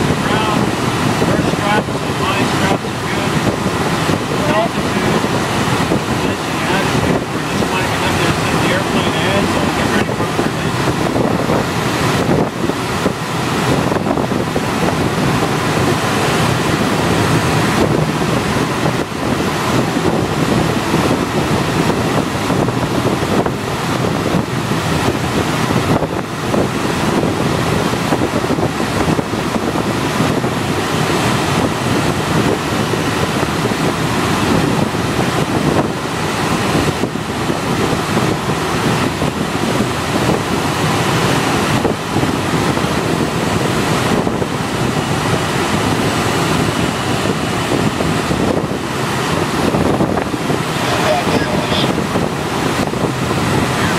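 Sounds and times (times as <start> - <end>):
air rushing past cockpit: 0.0 - 53.9
wind buffeting microphone: 0.0 - 53.9.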